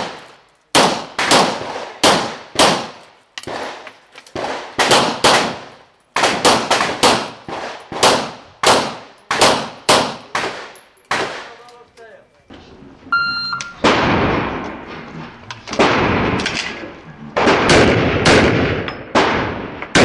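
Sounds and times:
pistol shots with echo: 0.0 - 11.6, 15.7 - 20.0
short electronic beep: 13.1 - 13.8.

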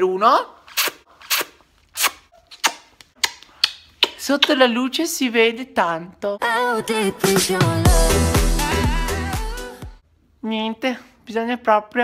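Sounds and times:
lip-smacking kiss sounds: 0.7 - 4.7.

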